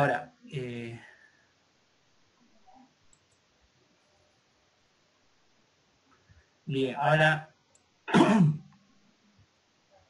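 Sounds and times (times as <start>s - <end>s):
man clearing throat: 8.1s - 8.7s.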